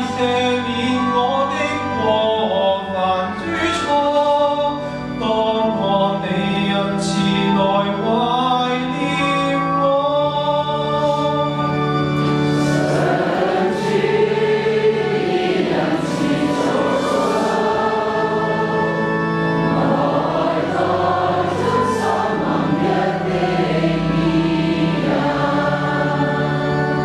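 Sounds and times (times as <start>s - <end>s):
congregation singing a psalm: 0.0s - 27.0s
instrumental accompaniment: 0.0s - 27.0s.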